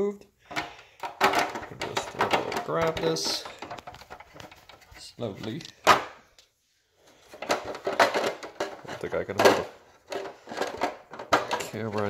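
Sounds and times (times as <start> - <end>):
plastic clicks and rattles: 0.5 - 6.5, 7.3 - 12.0.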